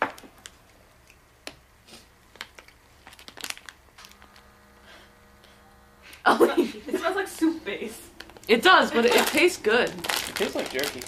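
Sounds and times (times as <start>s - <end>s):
faint steady hum: 0.0s - 11.0s
snack wrapper crinkling: 1.9s - 4.4s, 8.2s - 11.0s.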